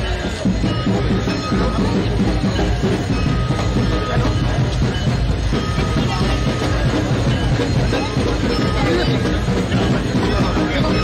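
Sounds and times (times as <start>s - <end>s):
crowd talking: 0.0s - 11.0s
held musical notes: 0.0s - 11.0s
music: 0.0s - 11.0s.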